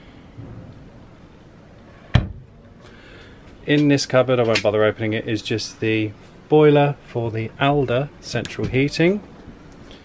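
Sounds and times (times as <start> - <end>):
wardrobe door shutting: 2.1 - 2.6.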